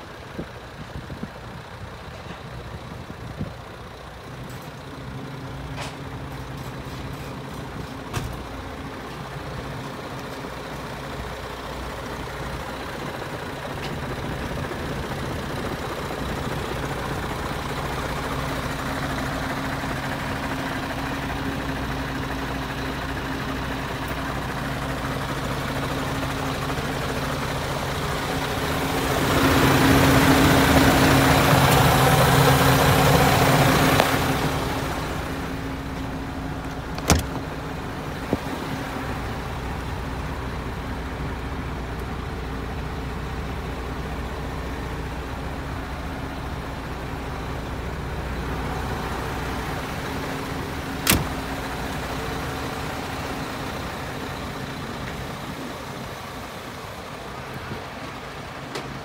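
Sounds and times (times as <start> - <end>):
diesel engine idling: 0.0 - 59.0.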